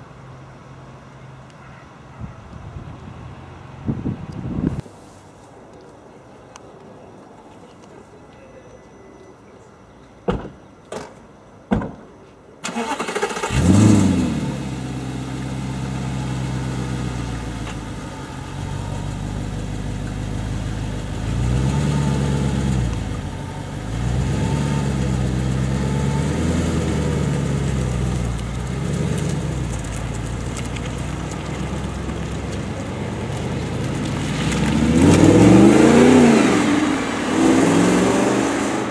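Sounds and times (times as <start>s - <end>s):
car engine starting and idling: 12.6s - 38.9s
car engine revving: 12.7s - 38.9s.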